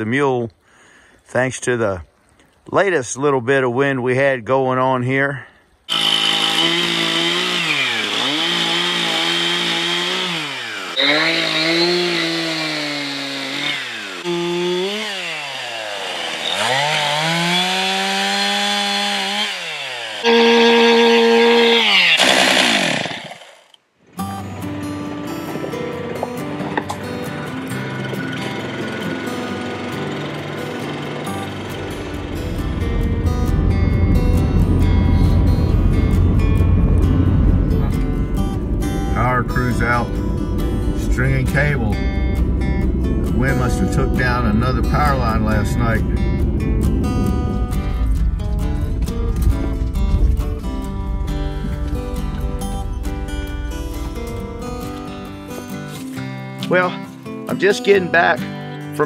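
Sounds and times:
chainsaw engine revving: 5.9 - 23.8, 26.9 - 33.7, 38.8 - 48.3
acoustic guitar music: 20.2 - 21.8, 24.0 - 59.0.

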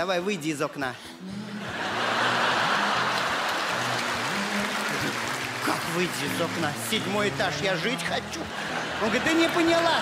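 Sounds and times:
audience laughter: 1.6 - 6.6, 7.7 - 10.0
audience applause: 1.6 - 10.0.

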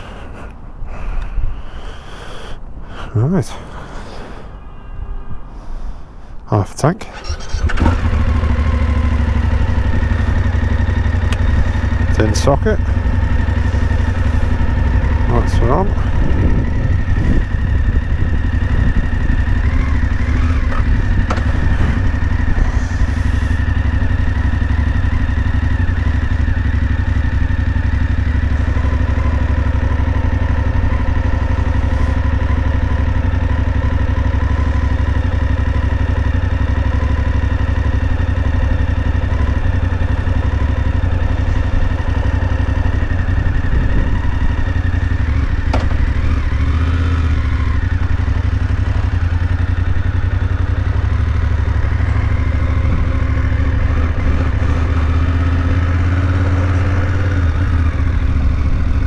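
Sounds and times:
motorcycle engine idling: 7.1 - 59.0.

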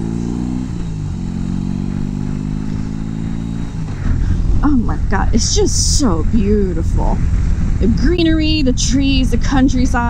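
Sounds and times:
motorcycle engine: 0.0 - 10.0
wind and road noise: 0.0 - 10.0.

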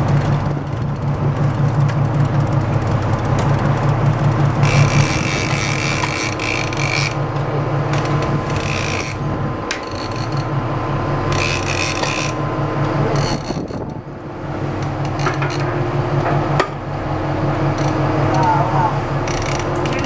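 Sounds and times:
steady low drone: 0.0 - 20.0
fishing reel whirring: 4.6 - 7.2, 7.9 - 10.5, 11.3 - 12.5, 13.1 - 14.0, 14.8 - 15.7, 17.7 - 20.0.

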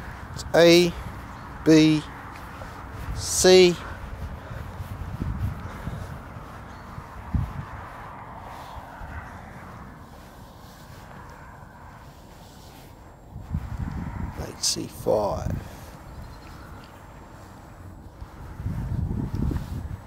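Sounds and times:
faint outdoor hiss: 0.0 - 5.3
footsteps on grass: 0.0 - 20.0.

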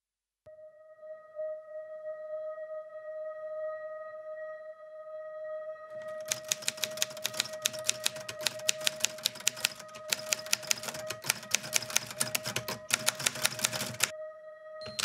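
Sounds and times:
typewriter keys clacking: 6.0 - 14.1.

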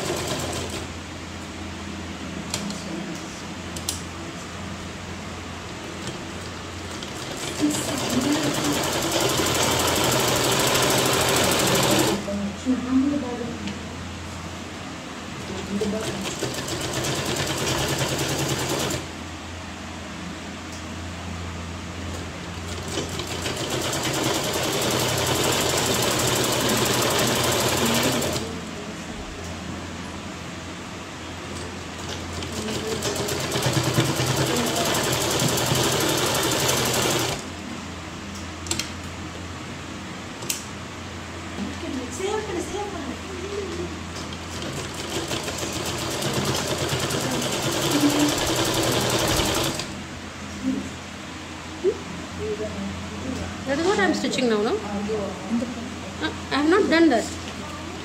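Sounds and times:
electric sewing machine running: 0.0 - 1.0, 6.8 - 12.2, 15.7 - 19.1, 22.6 - 28.5, 32.0 - 37.5, 44.4 - 50.0.

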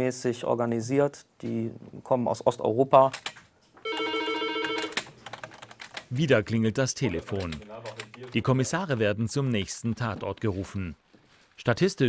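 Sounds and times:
telephone ringing: 3.8 - 5.1.

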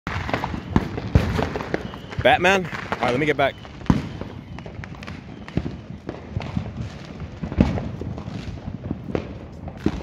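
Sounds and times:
firecrackers crackling: 0.1 - 10.0
firework bangs: 0.1 - 10.0.

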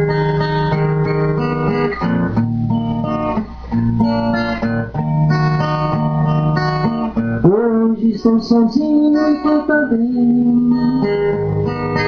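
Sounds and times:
slow acoustic guitar song: 0.0 - 12.0.

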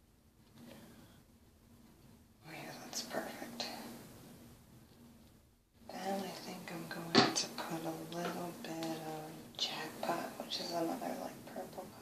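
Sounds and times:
woman half-whispering: 2.4 - 4.0, 8.6 - 12.0.

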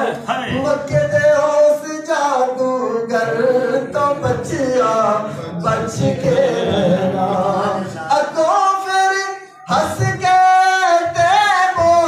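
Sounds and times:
person singing unaccompanied: 0.0 - 12.0.

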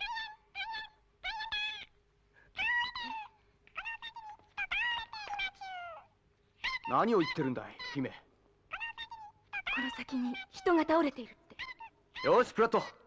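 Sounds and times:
cartoon mouse squeaky voice: 0.0 - 1.9, 2.6 - 13.0.

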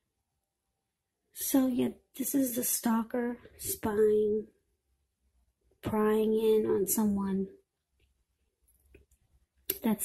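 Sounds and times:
woman speaking: 1.4 - 4.6, 5.8 - 7.6, 9.7 - 10.0.

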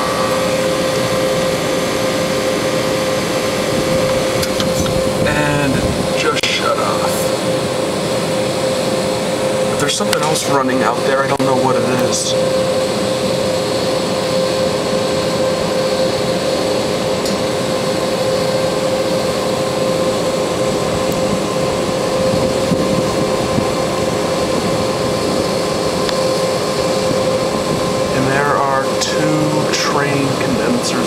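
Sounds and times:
fan and air noise: 0.0 - 31.0
hvac mechanical hum: 0.0 - 31.0.

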